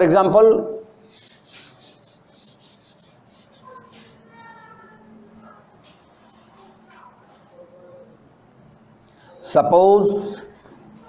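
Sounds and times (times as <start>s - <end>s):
chalk wiped off blackboard: 1.0s - 7.3s.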